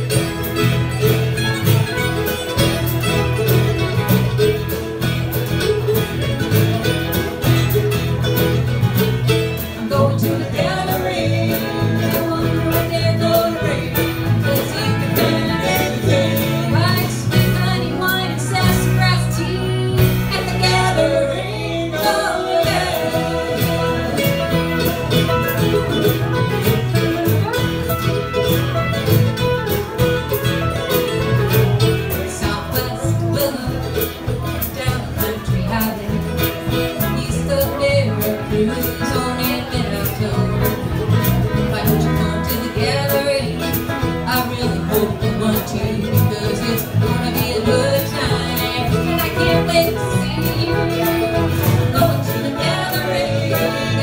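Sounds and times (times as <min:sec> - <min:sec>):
band playing country song: 0:00.0 - 0:54.0.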